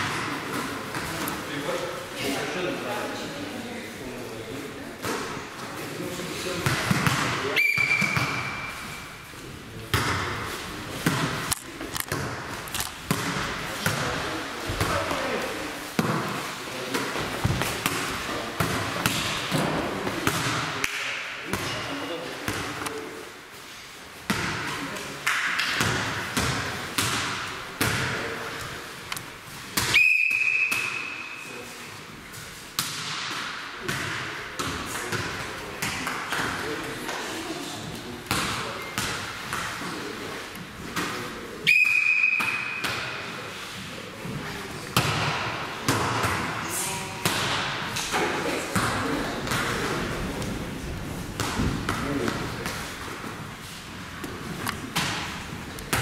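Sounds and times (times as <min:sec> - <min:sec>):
volleyball struck and bouncing: 0:06.6 - 0:08.8, 0:09.9 - 0:11.5, 0:12.1 - 0:15.2, 0:24.3 - 0:28.3, 0:41.0 - 0:43.2, 0:44.9 - 0:46.6, 0:51.4 - 0:52.9, 0:54.2 - 0:56.0
sports whistle blasts: 0:07.6 - 0:08.7, 0:29.9 - 0:31.4, 0:41.6 - 0:42.8
murmur of voices: 0:33.9 - 0:56.0.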